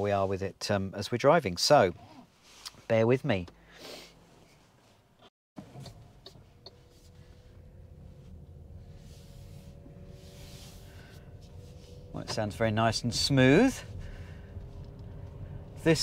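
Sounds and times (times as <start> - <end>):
faint drivetrain hum: 3.4 - 16.0
low road rumble: 5.6 - 16.0.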